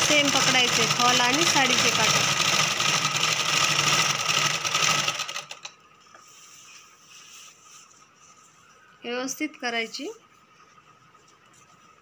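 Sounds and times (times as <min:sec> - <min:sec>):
sewing machine stitching: 0:00.0 - 0:05.7.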